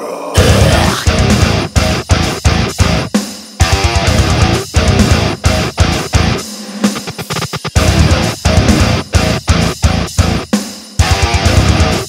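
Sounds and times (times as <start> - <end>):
distorted electric guitars chugging: 0.4 - 12.0
drum kit hits: 0.4 - 12.0.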